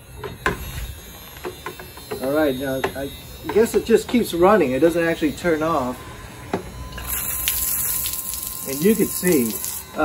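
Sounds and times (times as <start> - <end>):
pump humming: 5.5 - 10.0.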